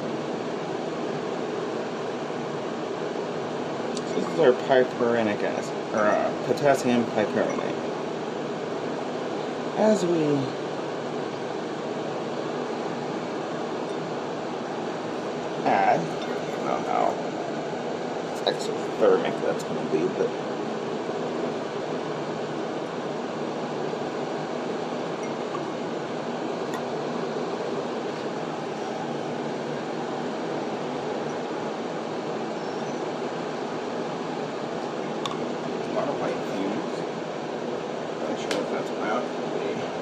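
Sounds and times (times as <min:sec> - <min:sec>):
magnetic stirrer humming: 0:00.0 - 0:40.0
steady background noise: 0:00.0 - 0:40.0.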